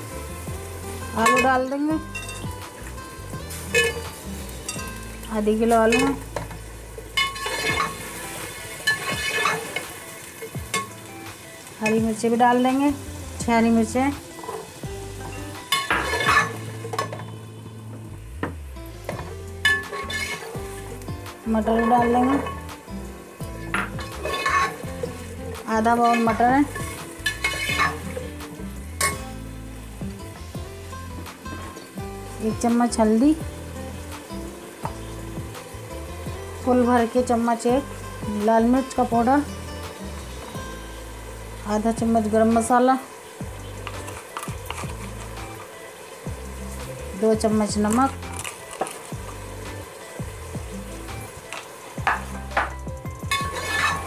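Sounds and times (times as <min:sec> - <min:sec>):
background music: 0:00.0 - 0:54.0
food sizzling in a pot: 0:00.0 - 0:54.0
metal spoon scraping a pot: 0:07.2 - 0:08.0, 0:08.9 - 0:09.8, 0:15.8 - 0:17.3, 0:19.7 - 0:20.6, 0:23.7 - 0:24.8, 0:26.0 - 0:28.1, 0:53.3 - 0:54.0
spatula stirring: 0:08.8 - 0:09.8, 0:19.6 - 0:20.6, 0:23.7 - 0:25.3, 0:26.0 - 0:28.3, 0:43.8 - 0:45.6, 0:53.3 - 0:54.0
spatula clinking against pot: 0:53.3 - 0:54.0.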